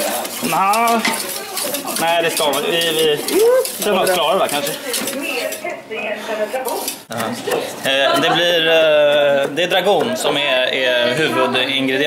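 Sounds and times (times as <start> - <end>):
utensil scraping a steel pot: 0.0 - 5.7, 6.4 - 7.1.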